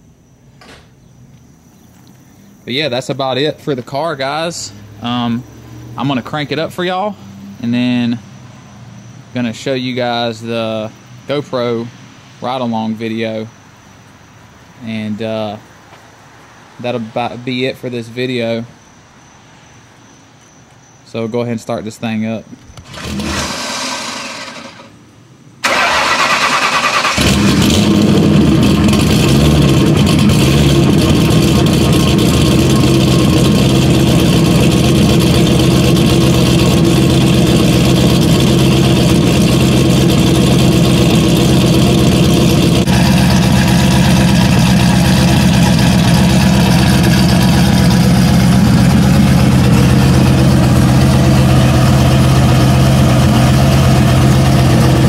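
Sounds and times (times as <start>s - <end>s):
engine idling loudly: 22.8s - 24.9s, 25.6s - 55.0s
starter cranking: 22.8s - 24.9s.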